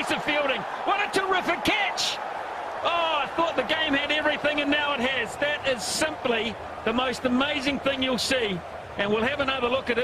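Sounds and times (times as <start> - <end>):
man commentating: 0.0 - 10.0.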